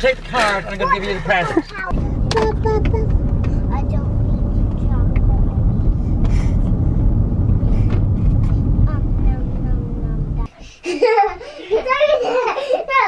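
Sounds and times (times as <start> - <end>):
car road and engine rumble: 0.0 - 10.5.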